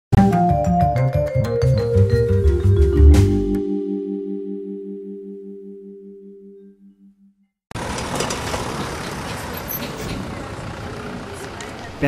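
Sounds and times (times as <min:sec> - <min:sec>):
traffic noise: 0:07.7 - 0:12.0.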